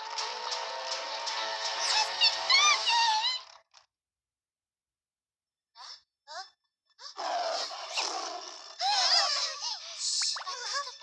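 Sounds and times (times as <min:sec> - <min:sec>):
cartoon creature outcry: 0:08.8 - 0:09.8.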